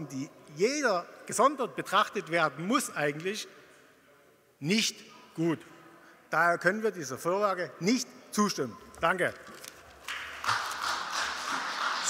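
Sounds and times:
people clapping: 10.0 - 12.0.

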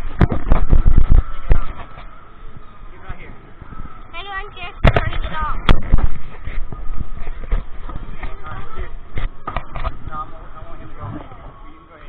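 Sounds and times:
thumps and knocks on microphone: 0.1 - 2.1.

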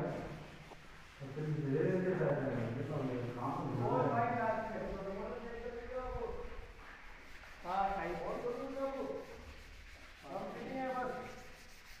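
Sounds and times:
person speaking: 7.6 - 9.4, 10.1 - 11.6.

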